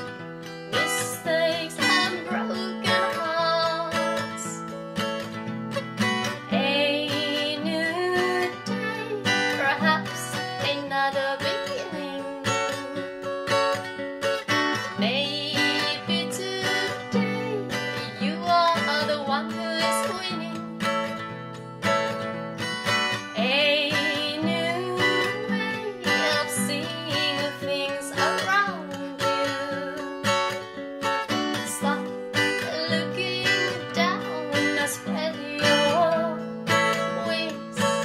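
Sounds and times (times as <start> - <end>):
woman singing: 0.0 - 4.8, 6.0 - 21.3, 22.7 - 38.0
acoustic guitar strumming: 0.0 - 38.0.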